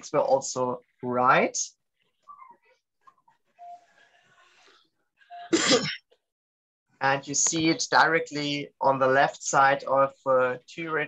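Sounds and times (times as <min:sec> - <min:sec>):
faint room noise: 0:00.0 - 0:06.3.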